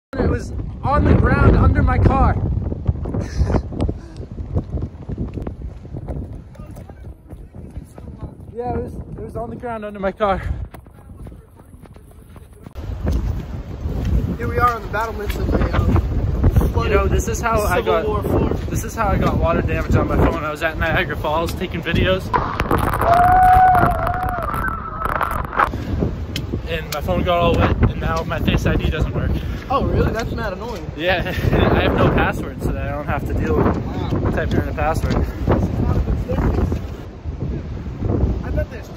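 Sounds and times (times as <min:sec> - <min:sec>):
wind buffeting microphone: 0:00.1 - 0:38.9
crackling knocks: 0:21.4 - 0:28.4.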